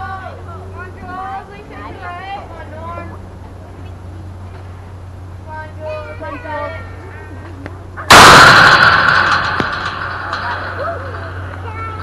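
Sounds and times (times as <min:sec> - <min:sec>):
ball hitting chain-link fence: 0:08.0 - 0:11.8
chain-link fence rattling: 0:08.0 - 0:12.0.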